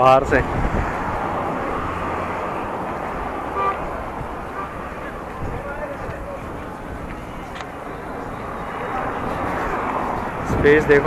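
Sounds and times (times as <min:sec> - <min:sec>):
roadside traffic rushing: 0:00.0 - 0:11.0
vehicle approaching: 0:00.0 - 0:11.0.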